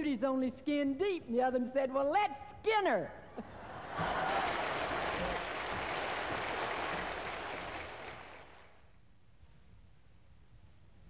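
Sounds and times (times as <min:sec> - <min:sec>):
audience laughing: 0:03.4 - 0:08.6
audience applauding: 0:03.7 - 0:08.8.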